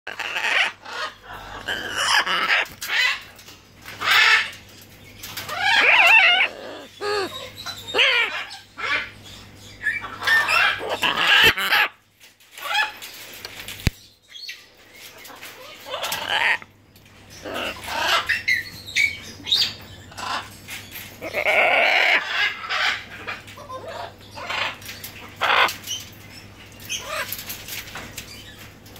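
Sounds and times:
parrot squawking: 0.1s - 3.3s, 4.0s - 4.5s, 5.5s - 9.2s, 9.8s - 12.0s, 15.6s - 16.7s, 17.4s - 18.6s, 21.2s - 24.8s, 25.4s - 25.8s.

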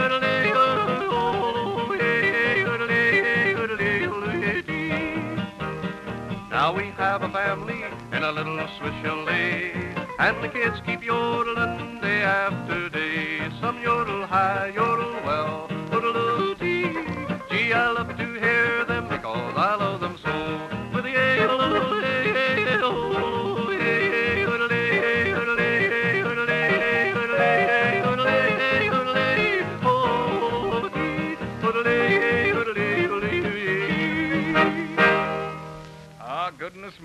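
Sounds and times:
man yodeling: 0.0s - 5.2s, 6.6s - 35.0s
acoustic guitar: 0.0s - 37.0s.

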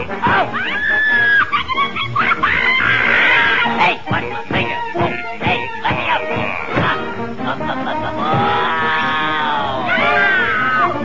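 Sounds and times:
cartoon orchestral music: 0.0s - 11.0s.

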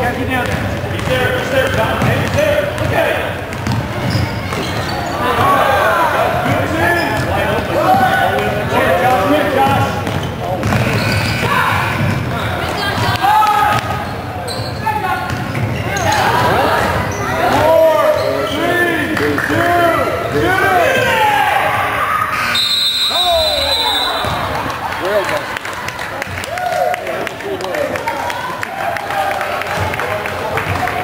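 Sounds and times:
basketball bouncing: 0.4s - 4.9s, 9.7s - 11.4s, 15.3s - 15.8s, 24.2s - 24.7s
sneaker squeaks: 3.5s - 5.4s, 6.8s - 7.4s, 9.8s - 19.0s, 22.3s - 24.5s
referee's whistle: 22.3s - 24.5s.

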